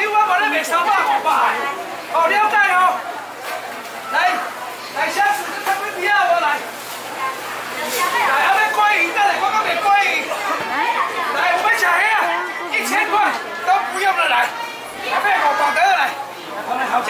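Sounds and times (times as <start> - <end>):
crowd chatter: 0.0 - 17.0
auctioneer calling out: 4.0 - 16.4.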